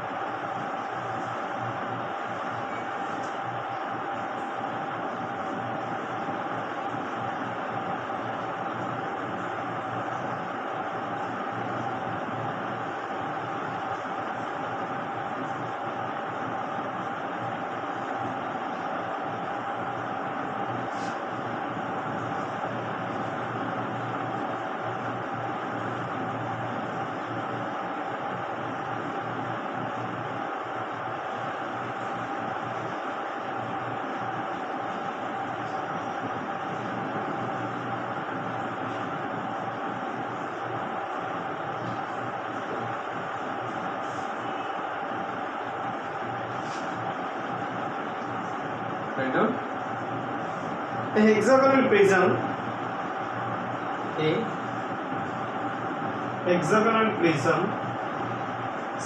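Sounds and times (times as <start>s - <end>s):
background hum and hiss: 0.0s - 59.0s
constant mid-pitched tone: 0.0s - 59.0s.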